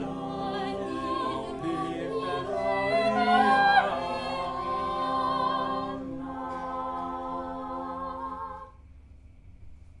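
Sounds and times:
unaccompanied voices singing madrigal: 0.0s - 8.8s.

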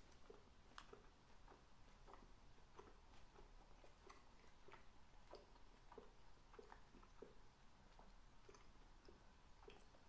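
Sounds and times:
wet chewing mouth clicks: 0.0s - 10.0s.

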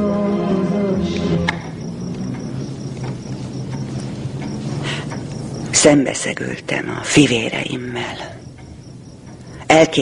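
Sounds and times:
crickets chirping: 0.0s - 10.0s
low steady hum: 0.0s - 10.0s.

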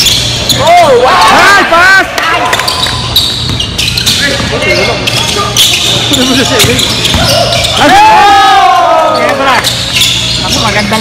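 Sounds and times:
basketball bouncing on wooden floor: 6.5s - 7.4s
voices shouting: 7.0s - 9.6s.

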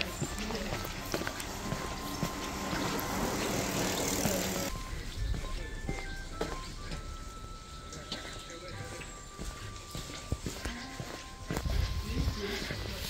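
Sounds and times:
bicycle tyres rushing on tarmac: 0.0s - 4.7s
light footsteps: 0.0s - 13.0s
soft background music: 0.0s - 13.0s.

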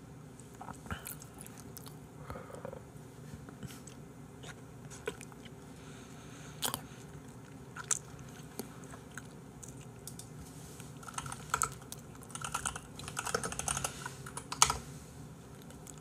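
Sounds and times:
computer keyboard typing: 10.0s - 10.3s, 11.0s - 14.8s.

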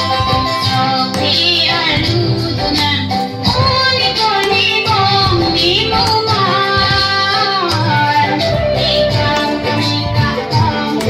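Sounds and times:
instrumental accompaniment: 0.0s - 11.0s
girls singing together: 0.8s - 8.1s.

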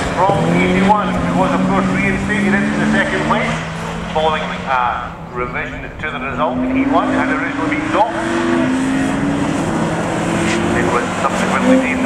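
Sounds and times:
race car engines: 0.0s - 12.0s.

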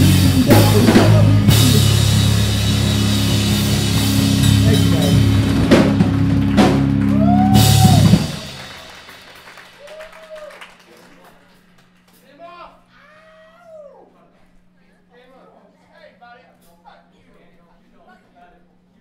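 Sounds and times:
distorted guitar and bass chords: 0.0s - 8.6s
drum kit hits: 0.0s - 9.4s.

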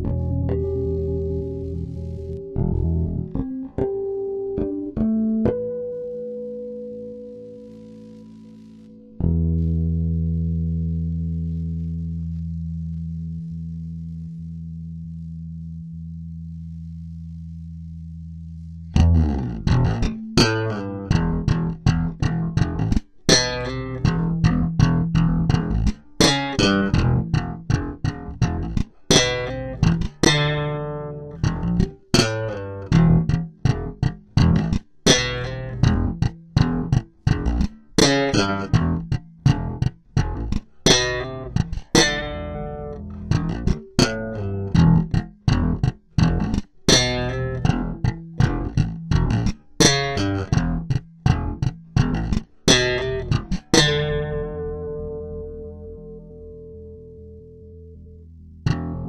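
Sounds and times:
electric bass notes: 0.0s - 59.0s.

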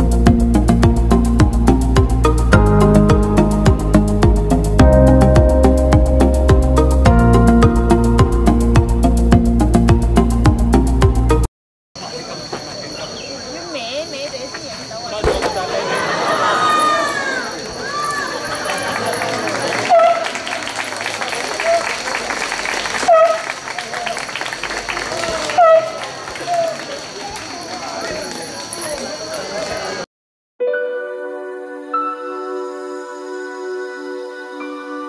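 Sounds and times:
people talking over one another: 12.0s - 20.1s, 25.0s - 30.0s
insects droning: 12.0s - 30.0s.

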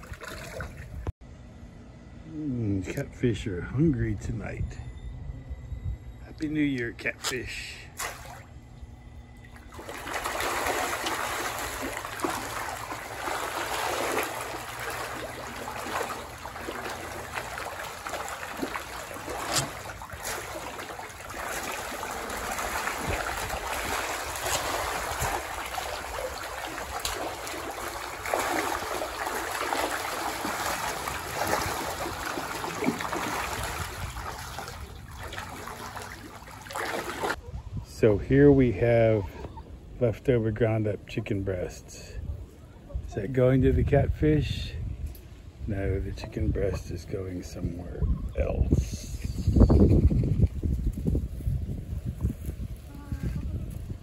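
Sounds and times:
fish splashing at water surface: 8.0s - 8.6s, 9.5s - 37.4s.

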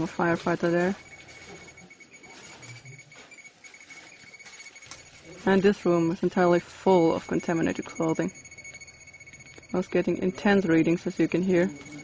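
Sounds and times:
faint steady high tone: 0.0s - 12.0s
radiation detector clicking: 0.0s - 12.0s.

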